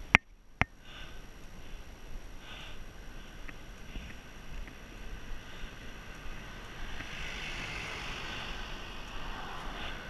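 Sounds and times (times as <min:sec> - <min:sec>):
pickup truck passing: 0:04.9 - 0:10.0.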